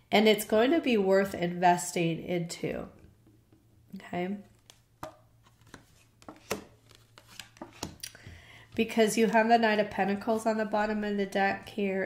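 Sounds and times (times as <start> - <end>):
cards clicking and tapping: 4.5 - 8.3.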